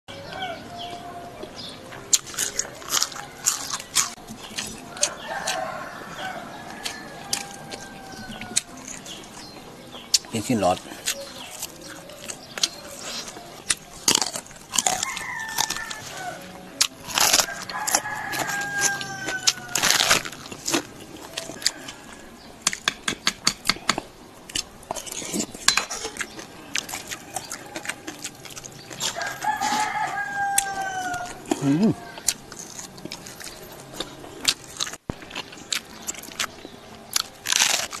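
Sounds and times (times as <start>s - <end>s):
chewing and crunching food: 0.2s - 38.0s.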